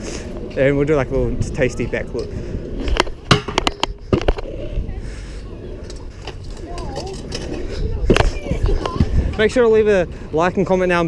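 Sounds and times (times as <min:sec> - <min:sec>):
scooter wheels rolling on concrete: 0:00.0 - 0:11.0.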